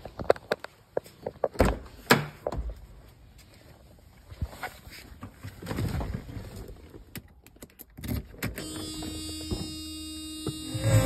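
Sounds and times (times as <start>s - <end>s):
steady electric hum: 8.6s - 11.0s.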